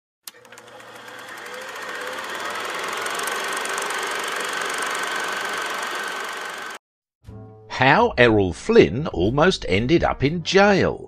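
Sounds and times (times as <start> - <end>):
faint projector whine: 0.3 - 6.8
film projector clattering: 0.3 - 6.8.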